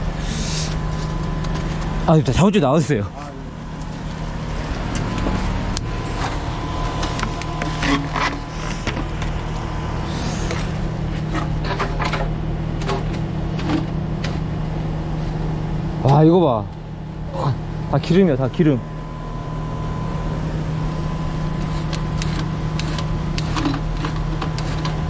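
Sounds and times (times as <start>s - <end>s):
engine running steadily: 0.0s - 25.0s.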